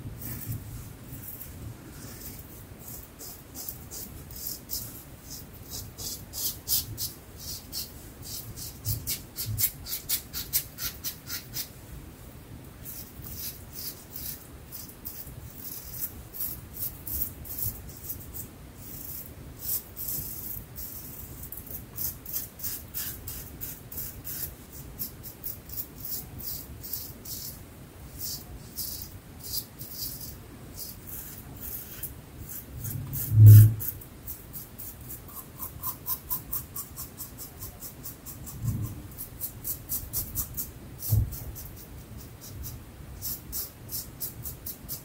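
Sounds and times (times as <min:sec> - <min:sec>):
razor scraping stubble: 0:12.8 - 0:18.4, 0:28.2 - 0:45.0.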